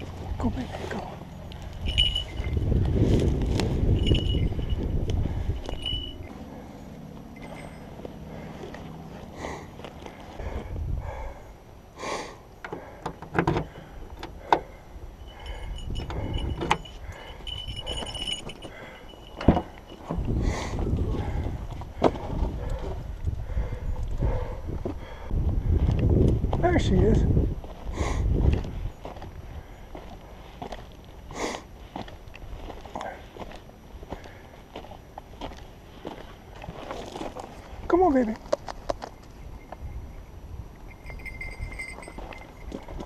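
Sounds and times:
keys jangling: 1.3 - 8.1, 14.4 - 20.3, 40.8 - 43.0
wind rumbling on microphone: 1.6 - 6.4, 10.3 - 11.6, 13.8 - 30.6
clicks and knocks at car hatch: 12.7 - 14.7.

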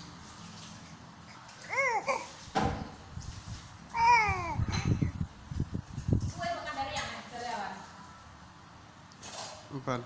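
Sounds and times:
soft rustle: 0.2 - 4.5
infant cooing: 1.4 - 2.4, 3.9 - 5.1.

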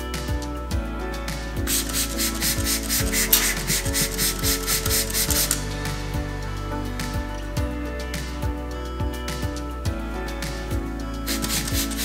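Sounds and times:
background music with steady beat: 0.0 - 12.0
spray bottle spritzing: 1.7 - 5.6, 11.3 - 12.0.

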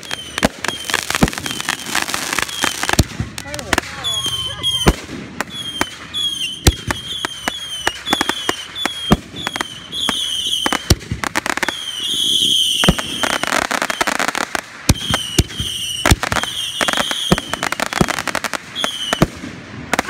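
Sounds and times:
fireworks bangs and crackles: 0.0 - 20.0.

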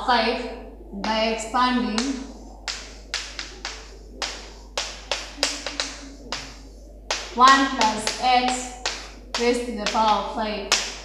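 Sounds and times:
chalk tapping on chalkboard: 1.8 - 11.0.

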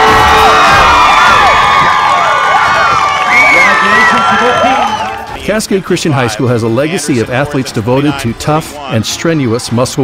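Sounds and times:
young people cheering and shouting: 0.0 - 5.4.

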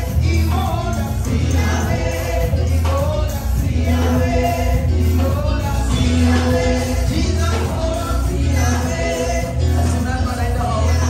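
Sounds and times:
group of voices singing gospel: 0.0 - 11.0
pulsing bass beat: 0.0 - 11.0.

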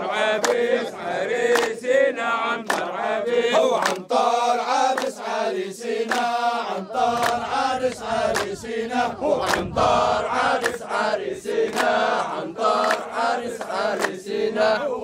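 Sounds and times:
men chanting in unison: 0.0 - 15.0
hand clapping: 0.4 - 0.9, 1.5 - 1.9, 2.6 - 3.0, 3.6 - 5.4, 6.0 - 6.5, 7.1 - 8.6, 9.4 - 9.8, 10.5 - 14.4.

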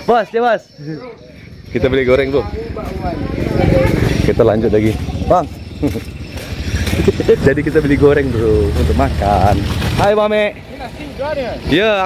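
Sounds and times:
small motorcycle engine running: 1.5 - 12.0.

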